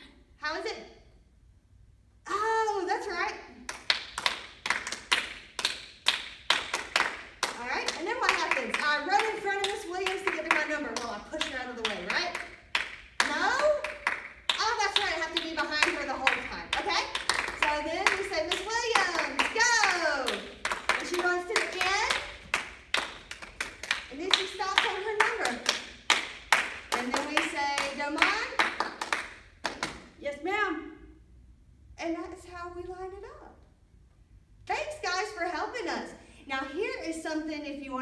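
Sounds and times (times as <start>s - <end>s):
hands clapping: 3.7s - 30.1s.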